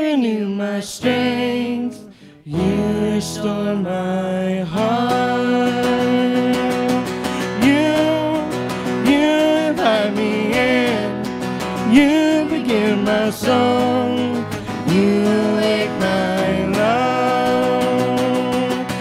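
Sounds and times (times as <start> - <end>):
people singing: 0.0 - 19.0
strummed acoustic guitars: 0.0 - 19.0
keyboard: 1.1 - 19.0.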